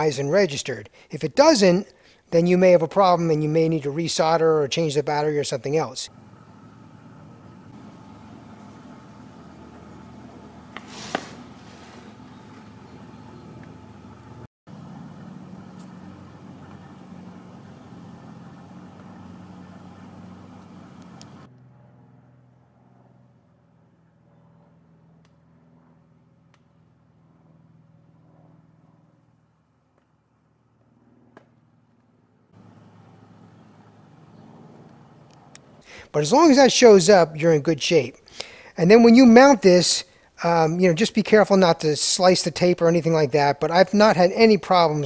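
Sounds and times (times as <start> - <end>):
low hum: 4.6 - 36.0.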